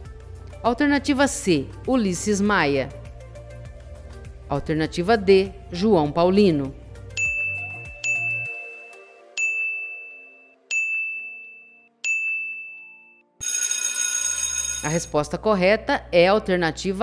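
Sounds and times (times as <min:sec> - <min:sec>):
electronic dings: 0:07.2 - 0:13.7.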